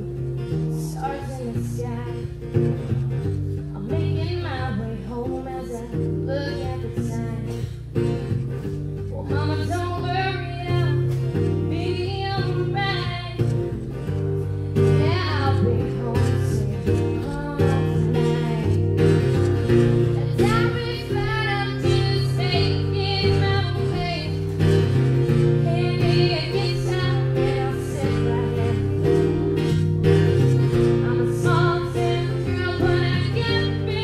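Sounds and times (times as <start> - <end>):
strummed acoustic guitar: 0.0 - 34.0
woman singing: 0.4 - 2.7, 3.6 - 8.1, 9.1 - 13.8, 14.8 - 19.3, 19.9 - 34.0.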